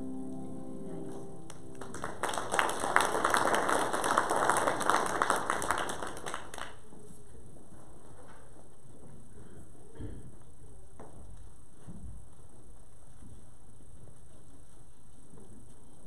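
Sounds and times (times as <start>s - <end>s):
music: 0.0s - 2.2s
congregation applauding: 1.0s - 6.8s.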